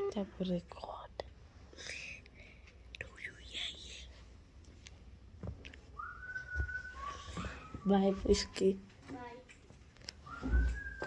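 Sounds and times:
faint whispery voices: 3.0 - 4.2.

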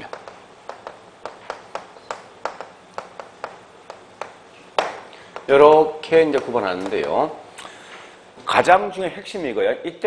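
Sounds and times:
chalk clicking on chalkboard: 0.0 - 7.3.

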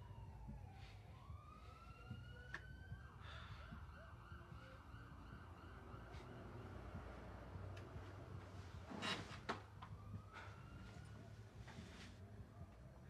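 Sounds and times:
faint siren wailing: 0.0 - 13.0.

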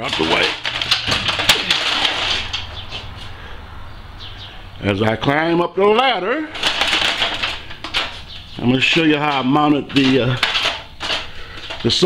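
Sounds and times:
metal ladder knocking and scraping: 0.0 - 3.1, 6.6 - 12.0.

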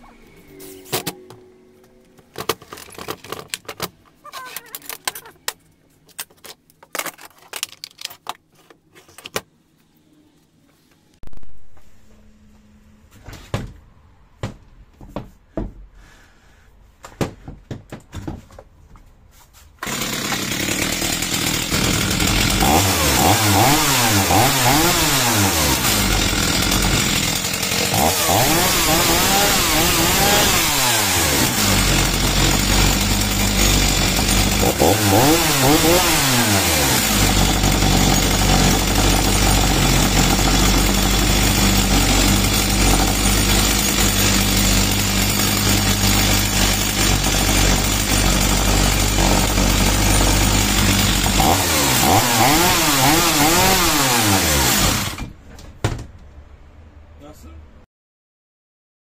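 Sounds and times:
chainsaw engine revving and idling: 19.8 - 55.3.

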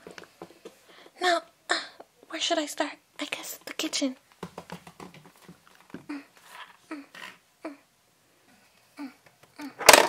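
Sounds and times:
plastic doll tapping on floor: 4.4 - 5.6.

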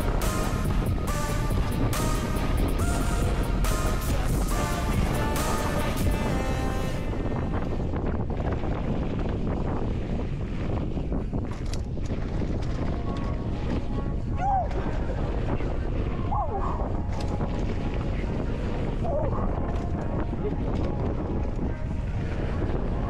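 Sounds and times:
wind rumbling on microphone: 0.0 - 23.0.

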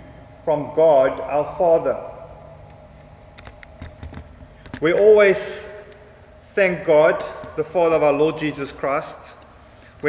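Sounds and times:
person speaking: 0.4 - 2.6, 4.7 - 10.0
laptop keys clicking: 3.4 - 4.8.

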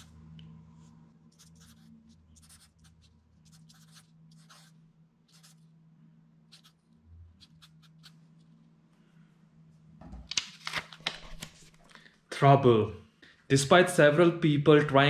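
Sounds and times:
marker scratching on paper: 1.3 - 5.7, 6.5 - 8.6.

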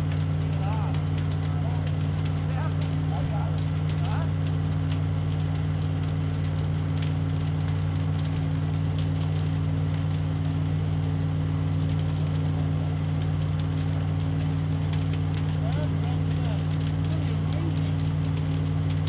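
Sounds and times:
engine idling drone: 0.0 - 19.0
fire crackling: 0.0 - 19.0.

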